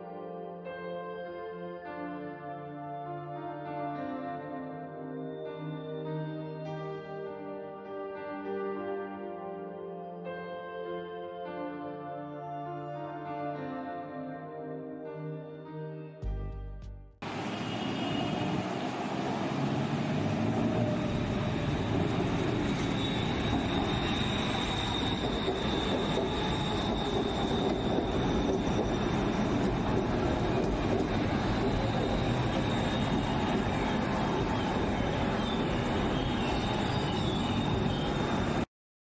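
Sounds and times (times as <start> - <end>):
train wheels rumbling on rail: 18.4 - 38.6.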